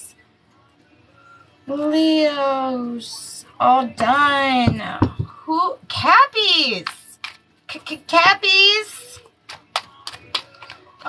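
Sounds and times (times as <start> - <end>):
cards clicking and tapping: 9.5 - 10.9.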